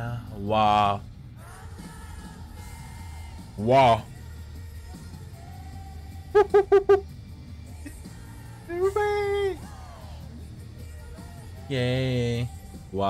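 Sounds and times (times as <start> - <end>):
man singing pa syllables: 6.4 - 7.0, 8.6 - 9.9.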